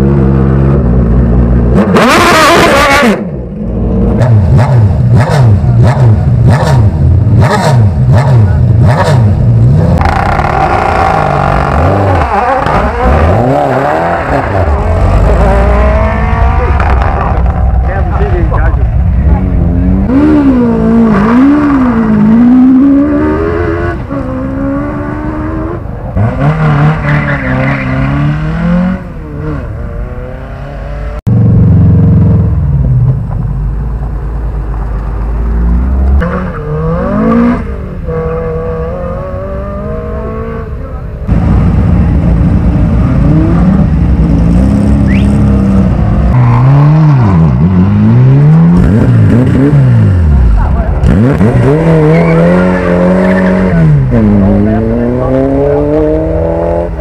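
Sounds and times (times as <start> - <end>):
race car engine revving: 0.0 - 33.2, 35.1 - 57.0
car engines revving in blips: 0.0 - 33.5, 34.7 - 57.0.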